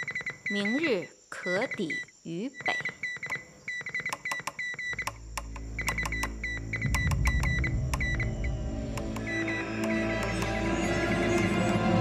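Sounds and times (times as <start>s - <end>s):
morse code beeps: 0.0s - 12.0s
background music: 5.4s - 12.0s.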